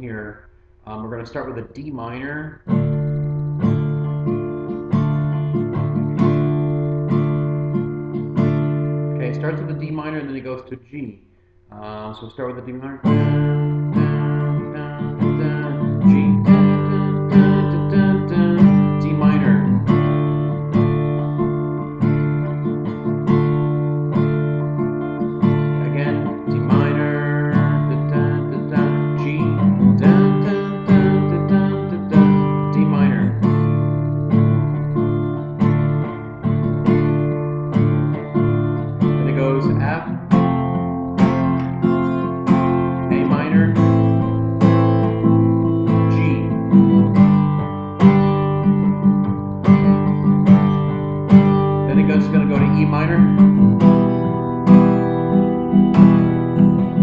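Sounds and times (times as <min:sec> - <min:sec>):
acoustic guitar strumming: 0:00.0 - 0:57.0.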